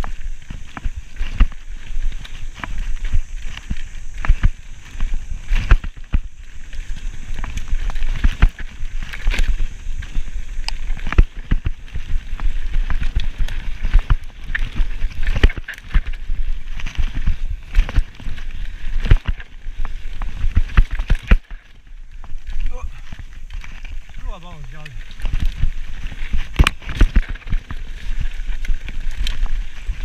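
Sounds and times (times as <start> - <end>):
bike knocking and rattling: 0.0 - 30.0
bike tyres rumbling on dirt: 0.0 - 30.0.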